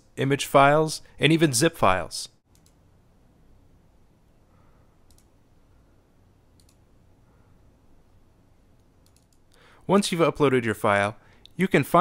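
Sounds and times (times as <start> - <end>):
low room hiss: 0.0 - 12.0
computer mouse clicks: 2.5 - 2.8, 5.0 - 5.4, 6.6 - 6.9, 8.8 - 9.6.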